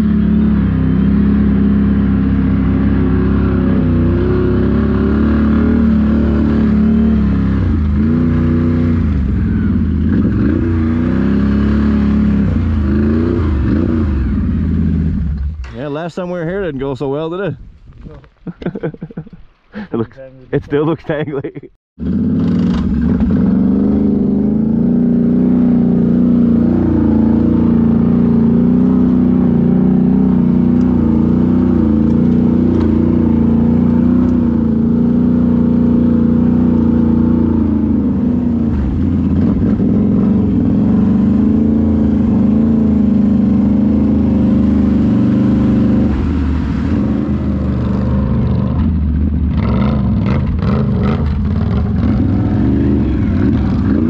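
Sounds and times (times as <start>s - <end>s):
atv engine running: 0.0s - 15.7s, 22.0s - 54.0s.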